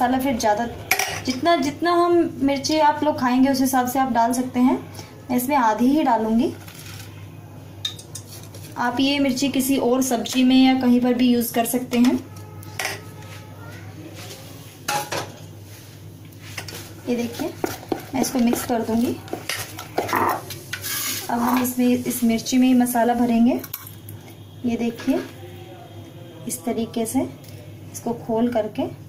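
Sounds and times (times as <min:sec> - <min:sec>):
spoon clinking on metal bowl: 0:07.8 - 0:08.3, 0:23.6 - 0:24.0
spoon stirring batter: 0:16.4 - 0:22.3.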